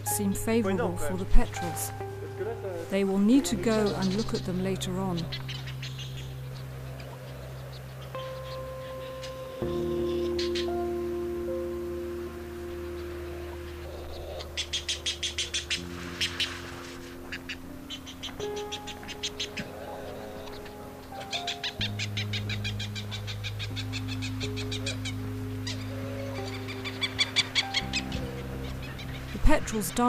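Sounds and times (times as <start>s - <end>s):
music of sustained chords: 0.0s - 30.0s
petrels calling: 1.2s - 30.0s.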